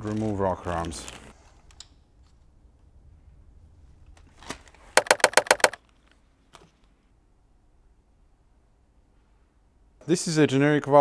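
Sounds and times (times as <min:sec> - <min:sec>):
sharp ringing metallic clicks: 0:05.0 - 0:05.8.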